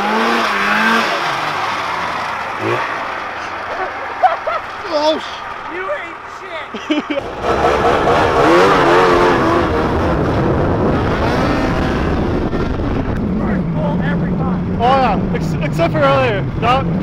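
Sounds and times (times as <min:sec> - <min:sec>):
snowmobile engine revving: 0:00.0 - 0:17.0.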